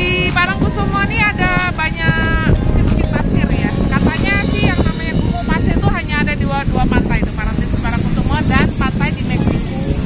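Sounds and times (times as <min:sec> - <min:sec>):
woman talking: 0:00.0 - 0:09.7
background music: 0:00.0 - 0:10.0.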